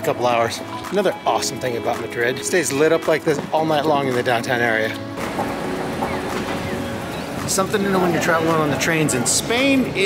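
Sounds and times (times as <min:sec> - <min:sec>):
train station rumble and hiss: 0:05.2 - 0:10.0.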